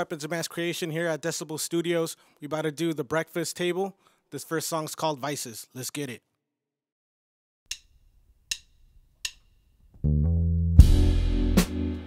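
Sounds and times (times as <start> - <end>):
drumsticks clicking together: 7.7 - 7.9, 8.5 - 9.6.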